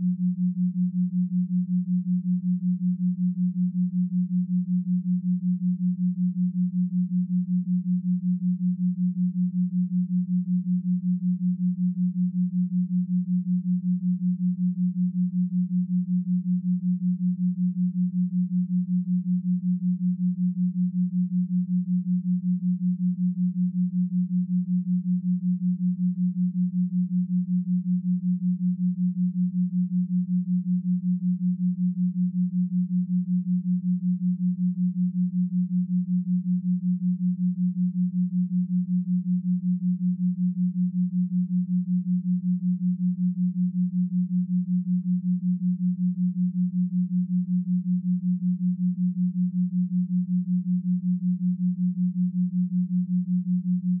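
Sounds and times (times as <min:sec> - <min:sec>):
low throbbing sine tone: 0:00.0 - 0:54.0.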